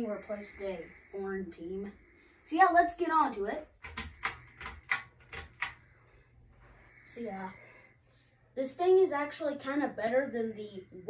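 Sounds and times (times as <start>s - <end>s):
ceiling fan pull-chain clicks: 3.8s - 5.8s.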